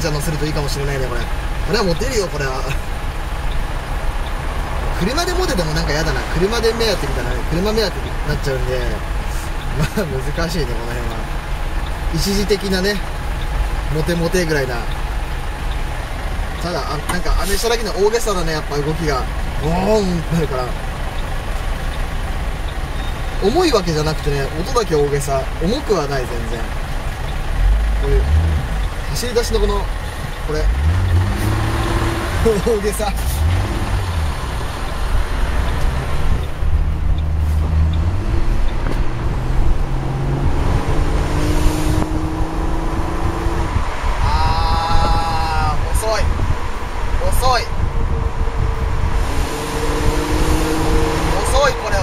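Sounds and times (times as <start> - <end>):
car engine running: 0.0 - 52.0
road noise: 0.0 - 52.0
wind noise: 33.9 - 52.0.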